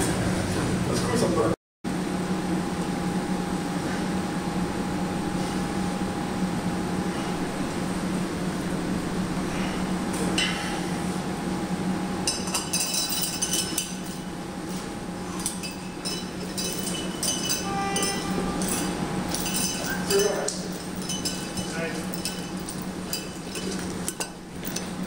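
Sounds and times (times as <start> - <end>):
steady hum: 0.0 - 25.0
chain and weight plates clinking: 12.3 - 25.0.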